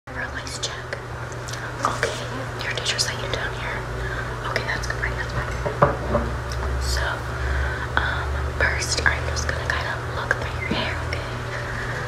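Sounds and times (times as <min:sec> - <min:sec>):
girl whispering: 0:00.1 - 0:05.7, 0:06.8 - 0:11.7
steady low hum: 0:00.1 - 0:12.0.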